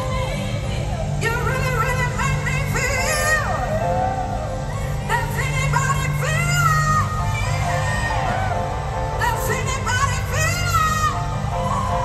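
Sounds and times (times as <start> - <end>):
woman singing soul: 0.0 - 12.0.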